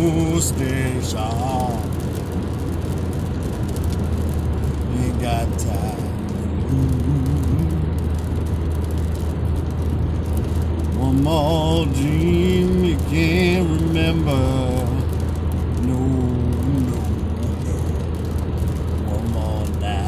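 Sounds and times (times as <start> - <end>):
car road and engine noise: 0.0 - 20.0
person humming low notes: 6.5 - 8.2.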